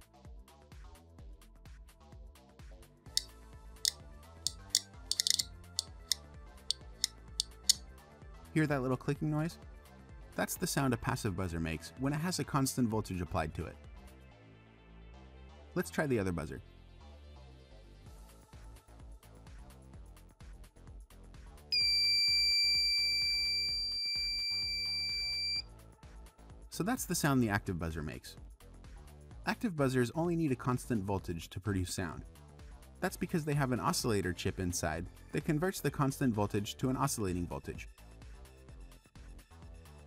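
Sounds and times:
background music with steady beat: 0.0s - 15.7s, 16.8s - 31.4s, 32.0s - 40.0s
high-pitched buzzer tone: 21.8s - 25.6s.

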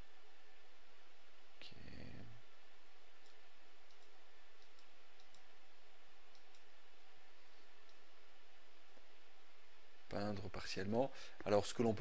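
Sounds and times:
faint sharp clicks: 3.2s - 5.5s, 6.3s - 6.7s.

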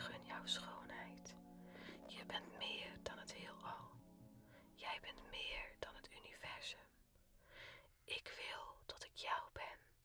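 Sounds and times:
person whispering: 0.0s - 4.0s, 4.8s - 7.0s, 8.1s - 9.9s
faint background music: 0.0s - 10.0s.

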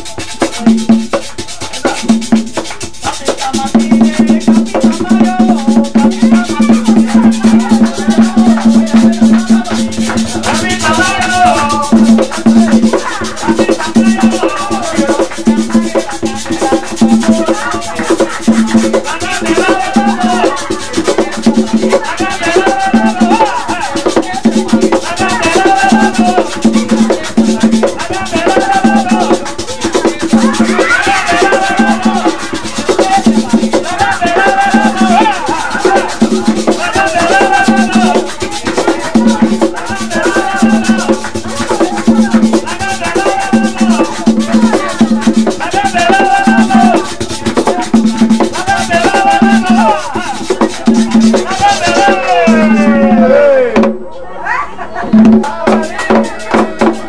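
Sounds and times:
hand drum played with palms: 0.0s - 54.0s, 55.1s - 57.0s
shaken percussion: 0.0s - 54.1s, 55.0s - 57.0s
voices singing: 0.0s - 57.0s.

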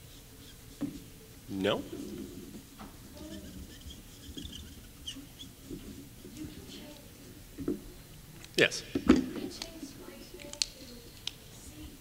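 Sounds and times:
faint high-pitched squeaks: 0.0s - 7.4s.

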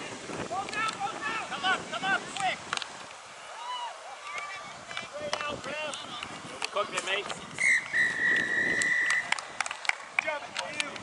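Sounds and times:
referee's whistle blast: 7.6s - 9.3s.

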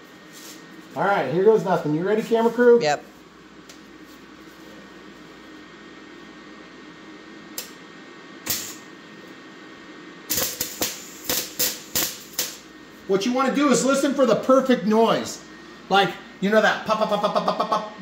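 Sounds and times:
steady low hum: 0.0s - 18.0s
welding arc crackling: 8.4s - 9.0s, 10.3s - 12.7s.

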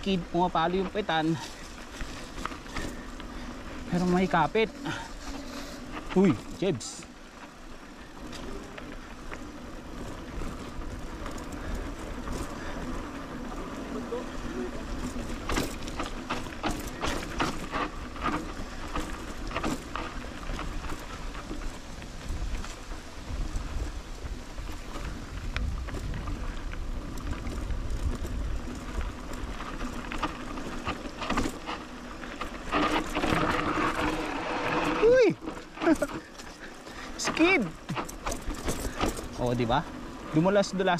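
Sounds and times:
bike rattling over bumps: 0.0s - 40.9s
bike tyres on dirt trail: 0.0s - 40.9s.

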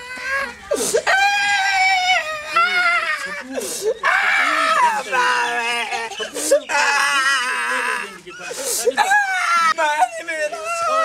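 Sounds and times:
person wailing and crying: 0.2s - 8.1s, 9.0s - 11.0s
sharp gasping breath: 3.6s - 4.0s, 8.4s - 9.0s.

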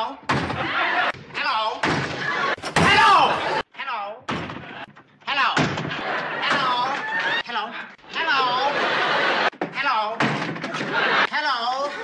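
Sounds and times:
door banging open: 0.2s - 3.6s, 4.3s - 7.4s, 9.6s - 11.1s.

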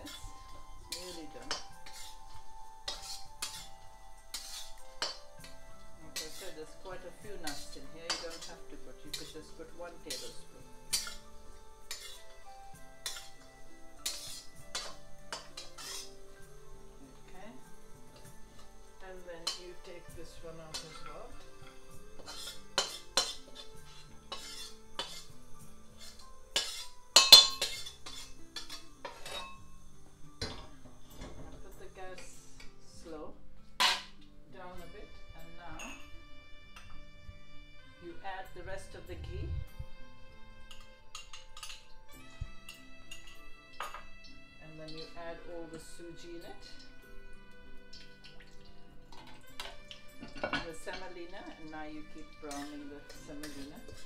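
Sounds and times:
metal spatula scraping pan: 0.0s - 16.4s, 17.4s - 29.7s, 33.7s - 34.2s, 38.8s - 44.1s, 44.8s - 48.4s, 49.0s - 54.0s
faint background music: 0.0s - 54.0s.

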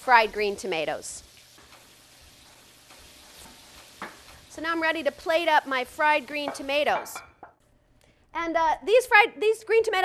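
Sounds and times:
slices sizzling in hot oil: 0.0s - 7.3s.

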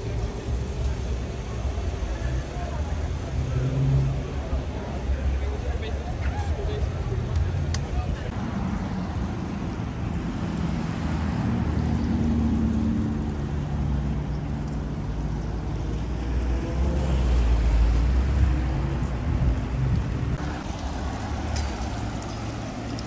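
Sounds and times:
people's voices: 0.0s - 8.6s
cars driving past slowly: 0.0s - 23.0s.

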